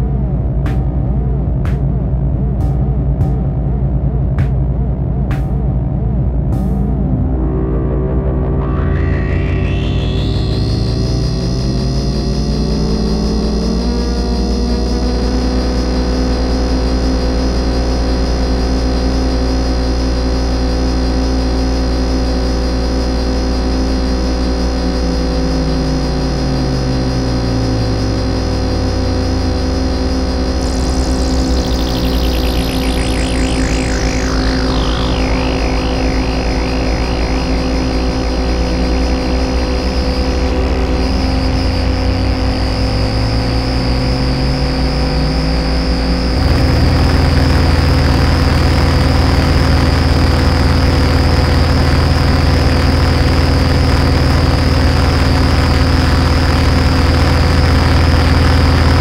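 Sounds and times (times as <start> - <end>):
synthesizer drone: 0.0 - 59.0
high whistling tone sweeping down: 6.6 - 16.3, 25.7 - 53.3.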